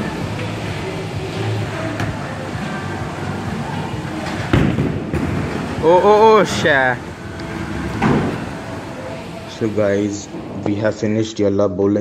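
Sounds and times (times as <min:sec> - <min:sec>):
steady rumble: 0:00.0 - 0:11.2
bowling ball hitting pins: 0:04.1 - 0:06.5, 0:07.7 - 0:08.7.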